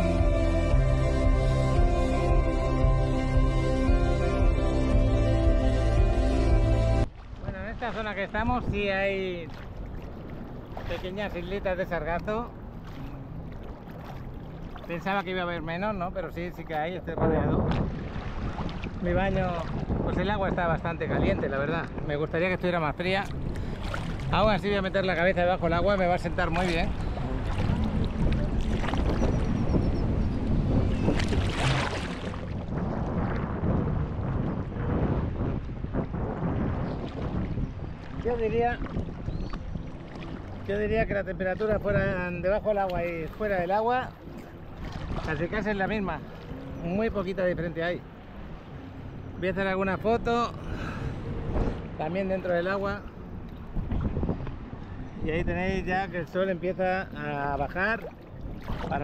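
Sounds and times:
wind buffeting microphone: 0.0 - 59.0
small waves sloshing and splashing: 7.0 - 21.0, 21.6 - 55.2, 56.0 - 59.0.

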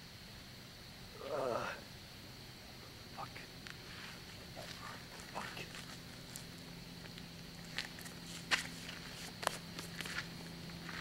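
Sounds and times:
footsteps on gravel: 3.8 - 11.0.

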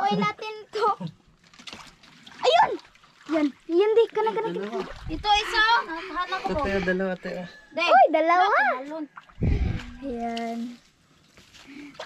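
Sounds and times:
people talking: 0.0 - 1.1
water splashing and sloshing: 0.0 - 7.6, 8.2 - 12.0.

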